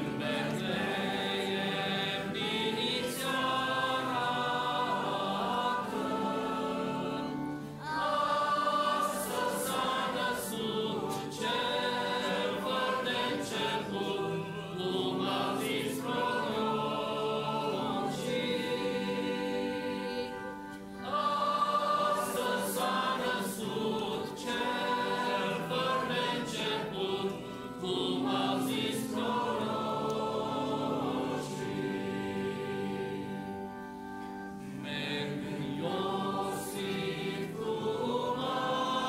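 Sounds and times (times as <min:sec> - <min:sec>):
choir singing in harmony: 0:00.0 - 0:39.0.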